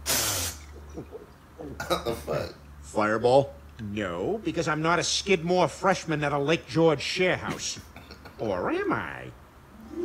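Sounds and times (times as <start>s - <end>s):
television static hiss: 0.0s - 10.0s.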